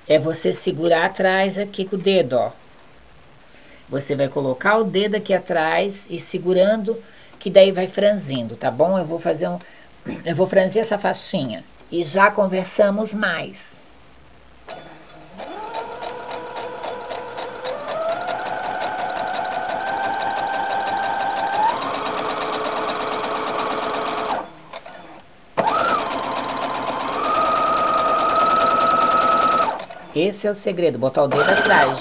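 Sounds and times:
sewing machine whine: 0:15.4 - 0:24.9, 0:25.6 - 0:30.0, 0:31.3 - 0:32.0.

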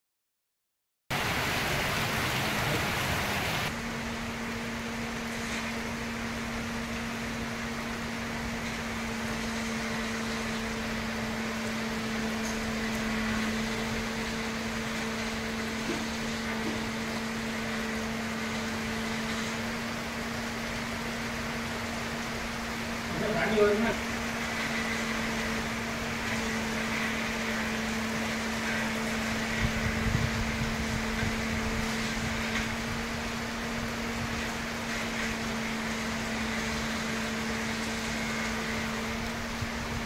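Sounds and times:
heavy rain hiss: 0:01.1 - 0:40.0
steady low hum: 0:01.1 - 0:40.0.

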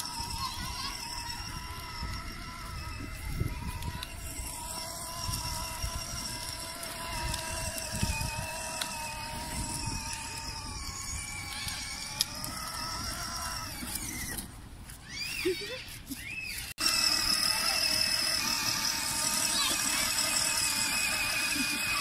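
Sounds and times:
plastic wheels rumbling on paving: 0:00.0 - 0:22.0
toy electric motor whine: 0:00.0 - 0:22.0.

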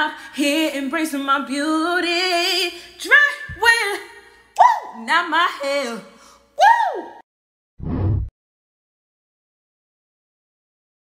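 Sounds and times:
woman exclaiming ooh: 0:06.6 - 0:07.2
low dull boom: 0:07.8 - 0:08.3.

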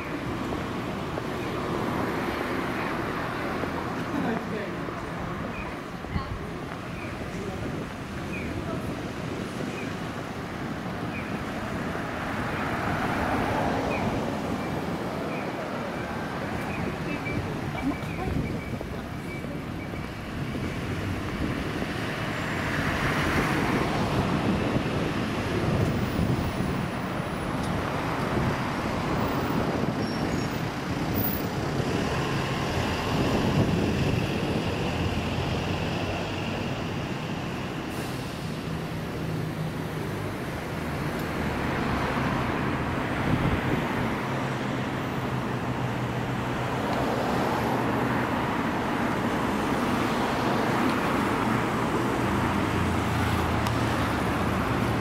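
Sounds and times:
cars and bus passing: 0:00.0 - 0:55.0.

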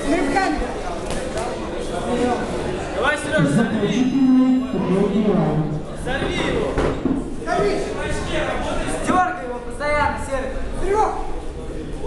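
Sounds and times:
voices calling out in a hall: 0:00.0 - 0:12.0.

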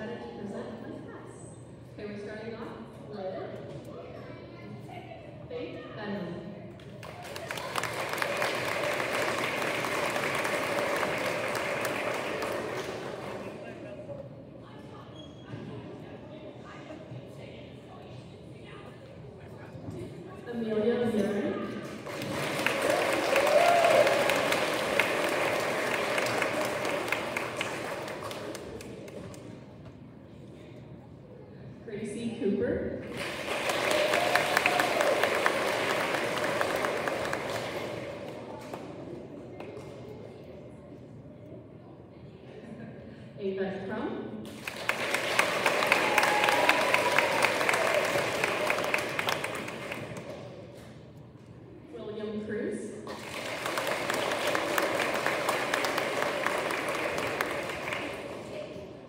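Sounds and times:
audience applauding: 0:07.0 - 0:13.8, 0:22.0 - 0:29.4, 0:33.1 - 0:38.9, 0:44.5 - 0:50.5, 0:53.1 - 0:58.9.

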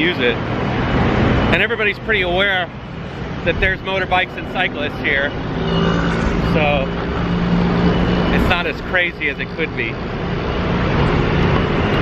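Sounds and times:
busy street traffic: 0:00.0 - 0:12.0.

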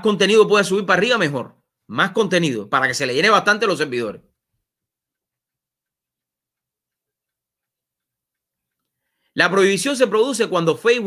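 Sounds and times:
speech: 0:00.0 - 0:04.3, 0:09.4 - 0:11.0.

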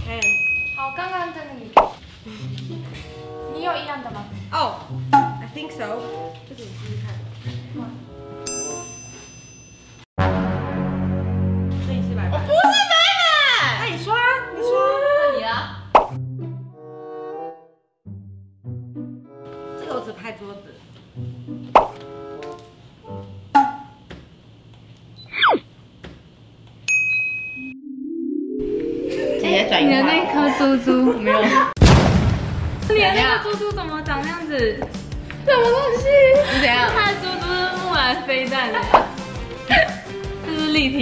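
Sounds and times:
sharp plop sounds: 0:01.8 - 0:02.0, 0:15.9 - 0:16.2
background music: 0:02.2 - 0:08.8, 0:10.2 - 0:20.2, 0:21.2 - 0:24.0, 0:27.7 - 0:31.5, 0:32.6 - 0:41.0
bright bell-like chime: 0:08.5 - 0:10.1, 0:26.9 - 0:27.8.

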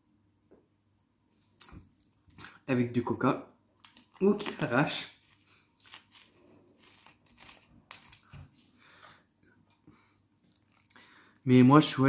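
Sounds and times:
plastic bottle crinkling: 0:03.8 - 0:08.6.

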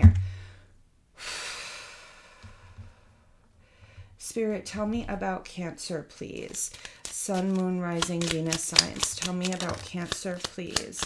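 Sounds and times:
woman breathing out: 0:00.2 - 0:04.2.

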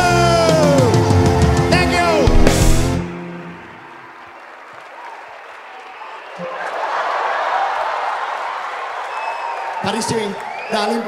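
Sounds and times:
audience applauding: 0:02.3 - 0:11.0.

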